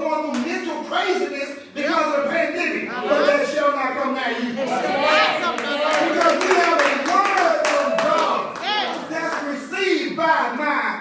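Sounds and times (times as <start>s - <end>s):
hand claps: 5.6s - 9.5s
man preaching loudly: 6.0s - 11.0s.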